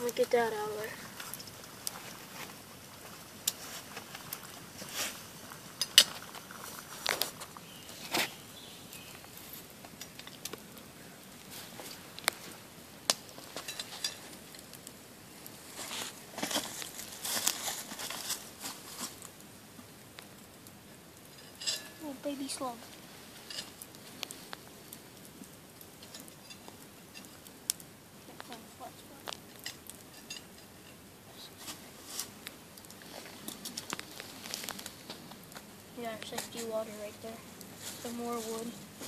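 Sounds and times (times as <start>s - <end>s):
campfire crackling: 0.0s - 39.0s
sharp pops from fire: 0.0s - 39.0s.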